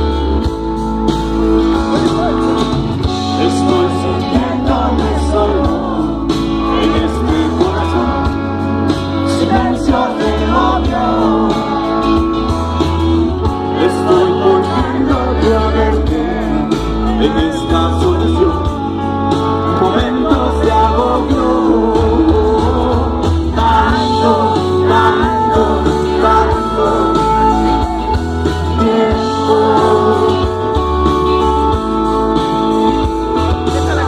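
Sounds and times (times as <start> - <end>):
live rock band playing: 0.0 - 34.0
person singing: 1.7 - 34.0.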